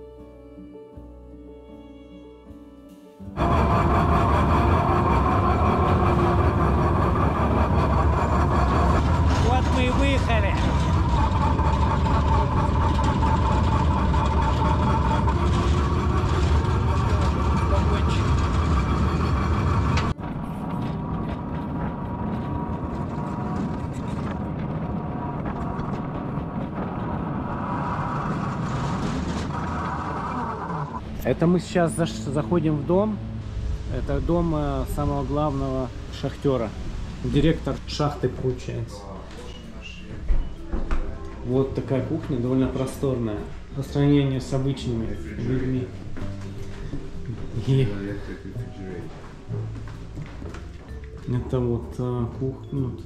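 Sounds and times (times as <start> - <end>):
rail car rumble: 3.3 - 51.3.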